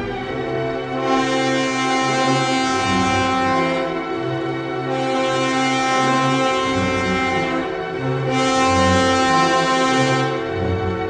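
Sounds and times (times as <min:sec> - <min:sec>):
orchestral music with low brass: 0:00.0 - 0:11.0.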